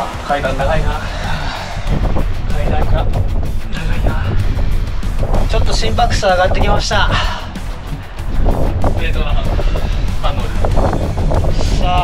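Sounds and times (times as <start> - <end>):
man talking: 0.0 - 1.8, 2.4 - 4.5, 5.4 - 7.6, 9.0 - 10.8
background music: 0.0 - 12.0
wind buffeting microphone: 0.0 - 12.0.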